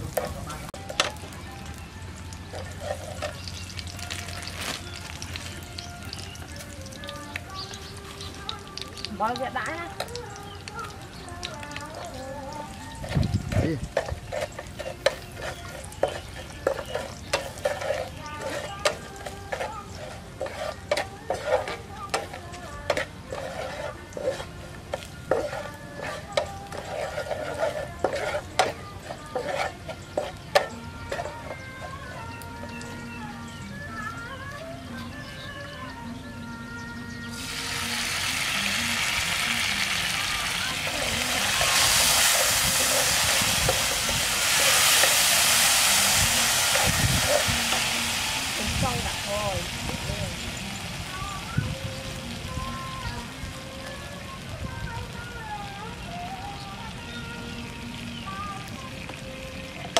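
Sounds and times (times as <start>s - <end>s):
spatula scraping frying pan: 0.0s - 1.2s, 2.4s - 4.5s, 11.9s - 32.8s, 37.8s - 50.7s
garlic sizzling in oil: 0.0s - 33.4s, 37.4s - 53.7s.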